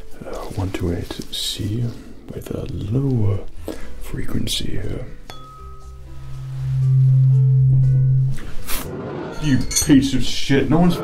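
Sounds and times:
mallet striking tuning fork: 5.3s - 6.0s
tuning fork humming: 5.3s - 8.6s.

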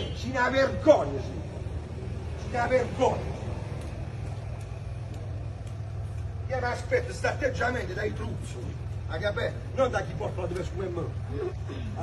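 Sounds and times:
faint street background: 0.0s - 12.0s.

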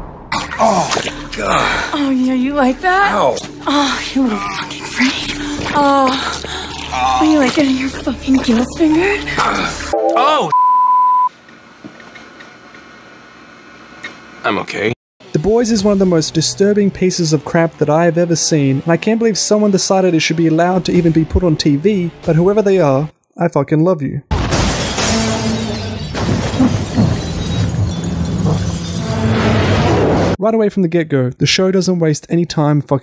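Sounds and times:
glass and debris shattering: 24.3s - 29.3s.

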